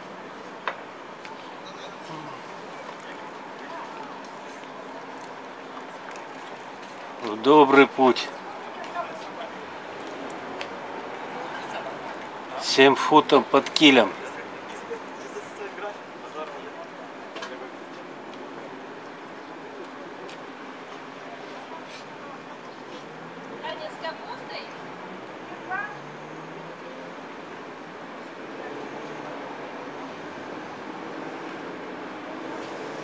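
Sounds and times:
faint distant voices: 0.0s - 33.0s.

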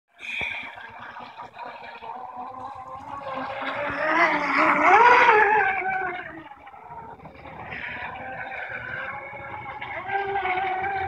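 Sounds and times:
electric motor whining: 3.4s - 11.0s.

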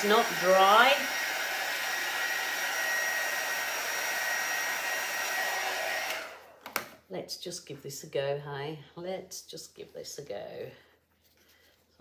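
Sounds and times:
hot-air blower whining: 0.0s - 6.8s.

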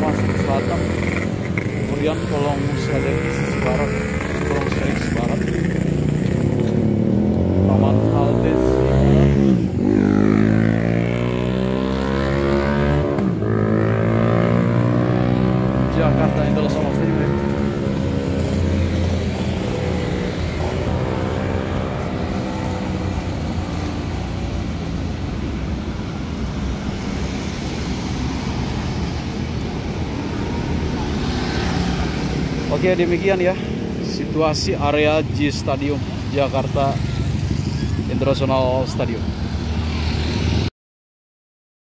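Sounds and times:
scooters and motorcycles passing: 0.0s - 40.7s
steady traffic hum: 0.0s - 40.7s.

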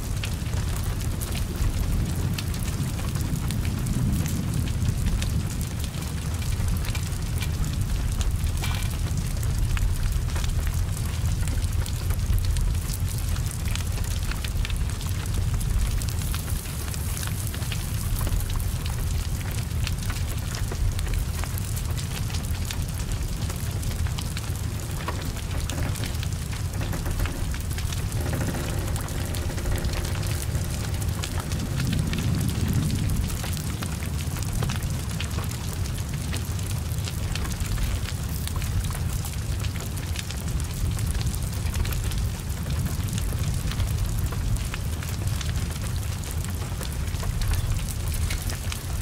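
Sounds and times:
heavy rain hiss: 0.0s - 49.0s
low rumble of flames: 0.0s - 49.0s
sharp crackles: 0.0s - 49.0s.

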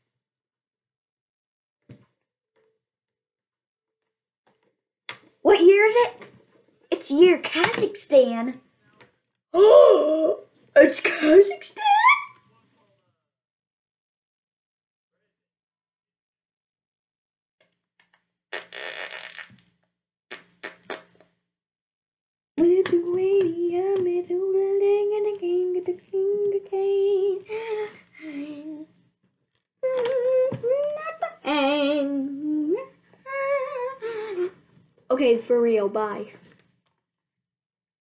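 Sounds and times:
boy humming: 9.6s - 10.5s, 26.2s - 29.0s, 29.8s - 34.6s.

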